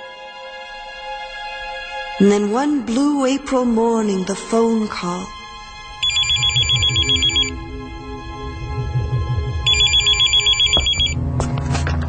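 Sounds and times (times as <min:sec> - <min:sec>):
low pulsing music: 0:00.0 - 0:12.0
electronic telephone ringing: 0:06.0 - 0:07.6, 0:09.7 - 0:11.2.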